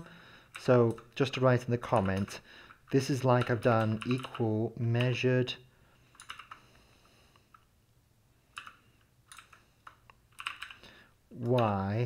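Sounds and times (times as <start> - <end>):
typing on a keyboard: 1.8 - 2.3, 3.4 - 4.4, 6.1 - 6.6, 8.5 - 10.8.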